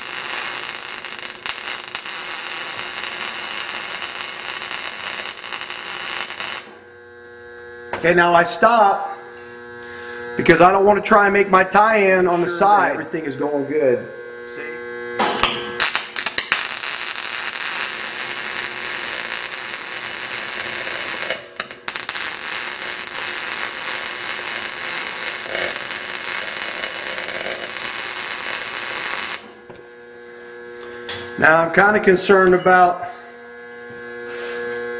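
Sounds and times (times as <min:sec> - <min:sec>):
welding arc hissing: 0:00.0 - 0:07.0, 0:15.2 - 0:29.6.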